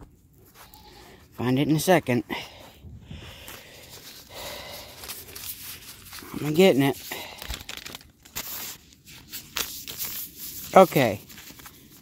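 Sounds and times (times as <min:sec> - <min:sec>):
paper crinkling and rustling: 0:03.3 - 0:12.0.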